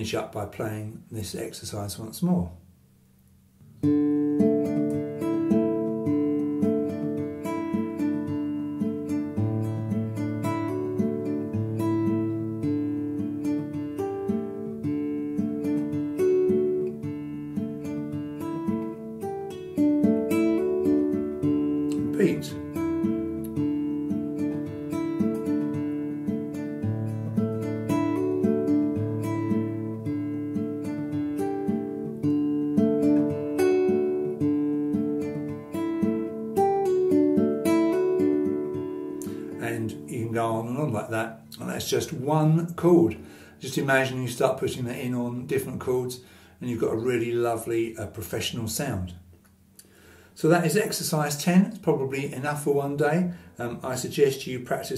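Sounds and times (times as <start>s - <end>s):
classical guitar fingerpicking: 3.1s - 45.9s.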